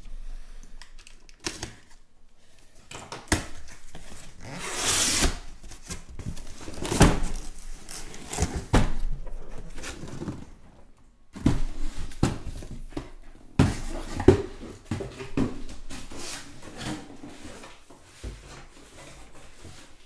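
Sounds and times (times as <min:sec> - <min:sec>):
cardboard rustling and scraping: 0:03.5 - 0:20.0.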